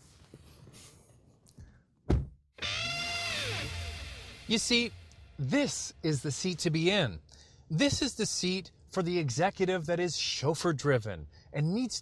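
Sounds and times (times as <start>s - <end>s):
heavy thump: 2.1s - 2.4s.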